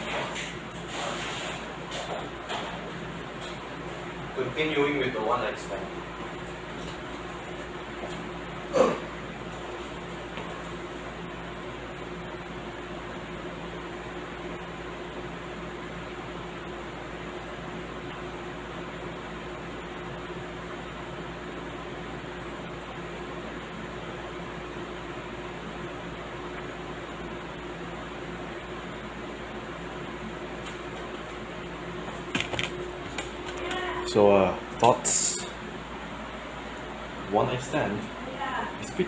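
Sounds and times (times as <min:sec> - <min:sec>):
room noise hiss: 0:00.0 - 0:39.0.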